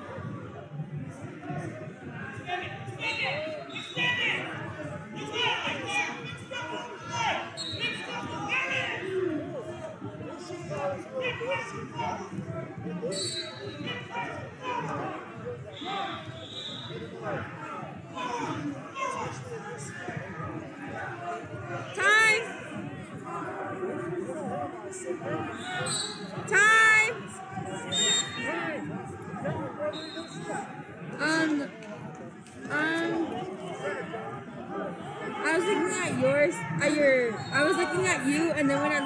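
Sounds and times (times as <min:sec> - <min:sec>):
background chatter: 0:00.0 - 0:39.0
shouted voices in gymnasium: 0:00.0 - 0:39.0
voices calling out: 0:21.0 - 0:31.9.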